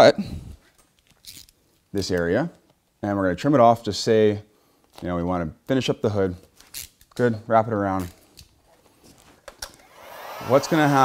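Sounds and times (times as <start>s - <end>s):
heat gun blowing: 9.8s - 11.0s.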